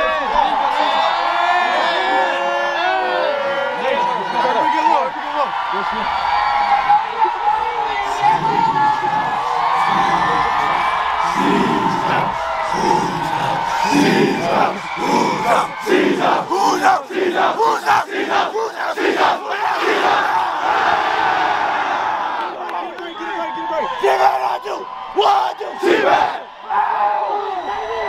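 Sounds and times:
players shouting and yelling: 0.0s - 28.0s.

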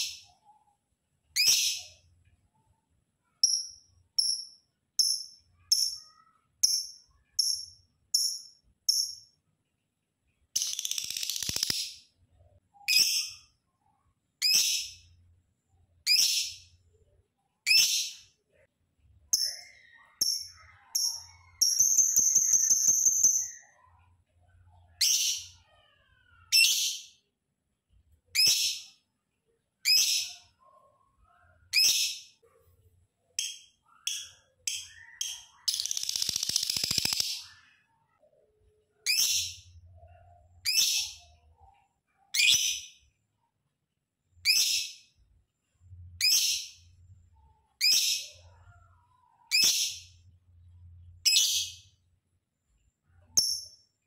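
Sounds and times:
lovebird harsh chatter: 35.0s - 37.7s.

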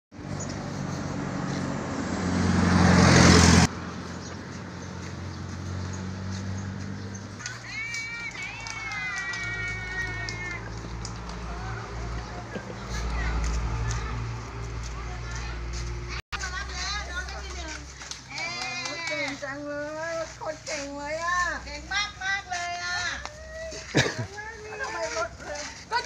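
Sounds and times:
vehicle passing close: 0.2s - 18.0s.

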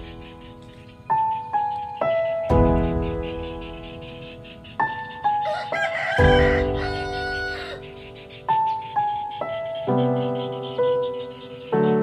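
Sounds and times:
slow piano music: 0.0s - 12.0s
rooster crowing: 5.4s - 7.9s.

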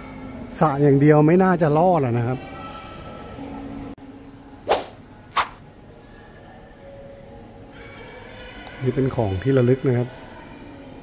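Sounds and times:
whip-like swoosh effects: 4.7s - 5.6s.

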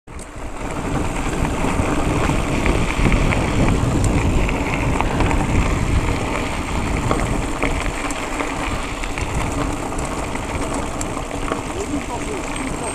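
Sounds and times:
bike clicks and rattles: 0.1s - 12.9s
tyres rolling on gravel: 0.1s - 12.9s
wind on microphone: 0.2s - 12.9s.

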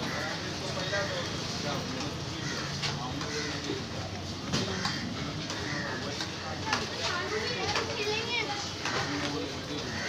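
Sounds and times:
chatter of voices with children: 0.0s - 10.0s.

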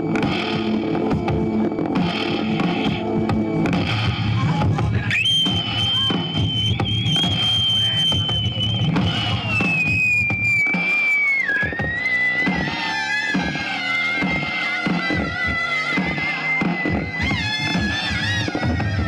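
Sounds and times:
high steady electronic tone: 0.0s - 18.8s
low electronic pulsing: 0.0s - 19.0s
noisy electronic texture: 0.0s - 19.0s.

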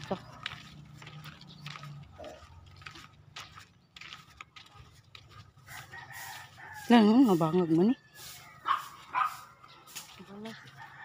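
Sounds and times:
rooster crowing: 5.6s - 9.7s, 10.4s - 11.0s.

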